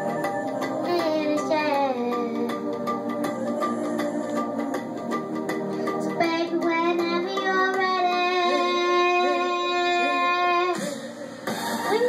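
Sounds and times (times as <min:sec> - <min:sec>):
pop karaoke backing track: 0:00.0 - 0:12.0
girl singing into a microphone: 0:00.8 - 0:02.4, 0:06.0 - 0:10.8.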